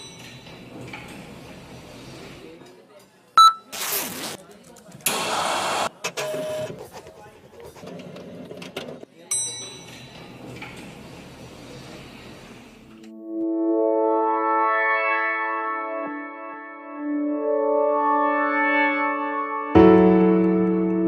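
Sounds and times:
short electronic beep: 3.4 - 3.7.

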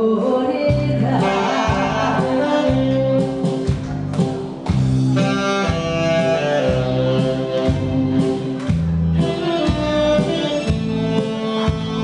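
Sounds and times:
bass line: 0.0 - 12.0
live band playing: 0.7 - 12.0
saxophone: 0.9 - 3.5, 5.0 - 12.0.

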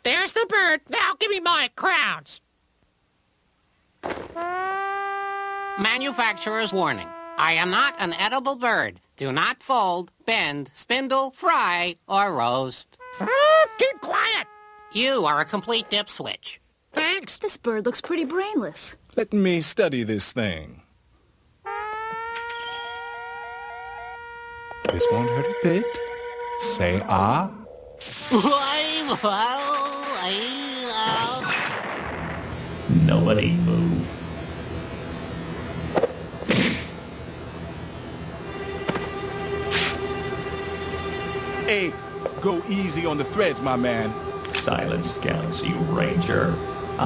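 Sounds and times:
quick rising chirp: 22.4 - 24.2
synthesized electronic tone: 37.7 - 47.0.

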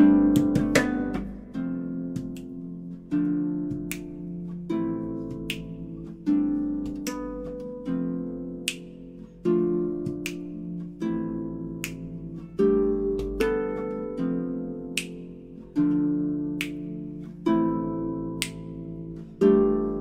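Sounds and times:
harp chords plucked: 0.0 - 20.0
sharp percussive clicks: 8.6 - 9.2, 9.9 - 11.0, 11.7 - 12.4, 14.8 - 15.4, 16.5 - 17.1.

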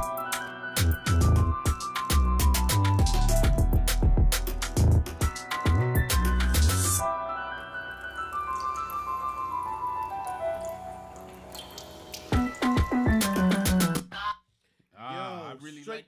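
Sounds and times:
electronic hip-hop beat: 0.0 - 7.0, 12.1 - 14.4
man speaking: 15.0 - 16.0.

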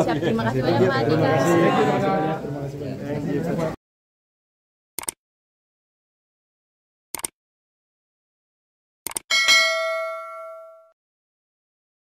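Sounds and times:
quick clicks: 5.0 - 5.2, 7.1 - 7.3, 9.0 - 9.3
bright bell ding: 9.3 - 11.0.

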